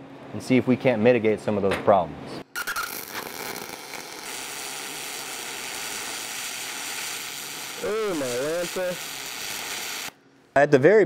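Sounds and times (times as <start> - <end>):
welding arc crackling: 2.5 - 10.2
person speaking: 7.8 - 9.0.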